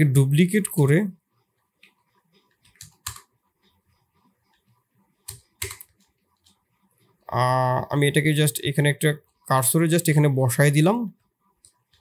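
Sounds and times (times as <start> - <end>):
keyboard keys clicking: 1.8 - 3.3, 4.5 - 6.6.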